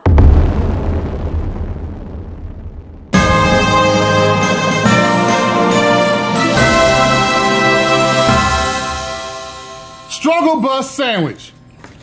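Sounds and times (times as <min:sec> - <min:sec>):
deep explosion boom: 0:00.0 - 0:05.3.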